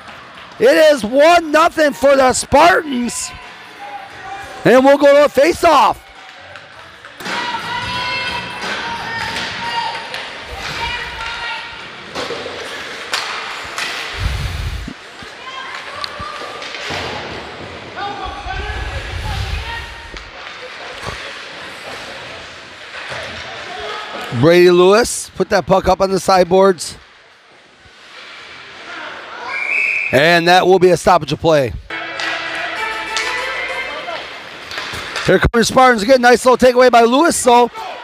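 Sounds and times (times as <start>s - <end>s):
hockey sticks and puck clacking: 0.0s - 14.2s, 15.0s - 18.2s, 20.1s - 24.3s, 31.9s - 37.9s
voices calling out in arena: 0.6s - 12.0s, 28.8s - 34.4s, 35.2s - 38.0s.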